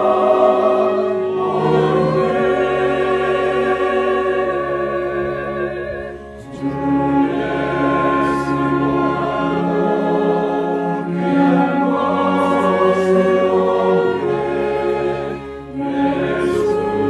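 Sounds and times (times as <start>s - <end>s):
mixed choir singing a hymn: 0.0s - 17.0s.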